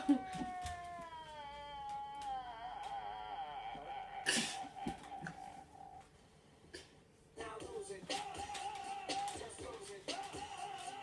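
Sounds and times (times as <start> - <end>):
high cat-like wail: 0.0 - 5.6.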